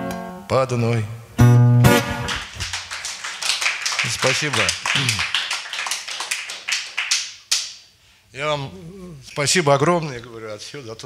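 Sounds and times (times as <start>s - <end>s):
audience applauding: 2.2s - 7.7s.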